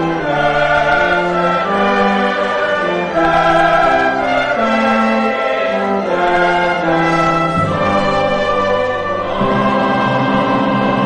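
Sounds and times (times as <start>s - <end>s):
church choir singing: 0.0s - 11.0s
instrumental accompaniment: 0.0s - 11.0s.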